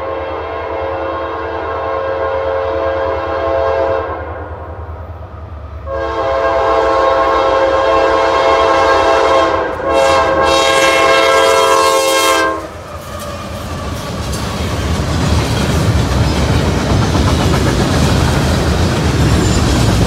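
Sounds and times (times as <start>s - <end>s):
locomotive air horn blasts: 0.0s - 4.5s, 5.9s - 12.9s
low locomotive rumble: 0.0s - 20.0s.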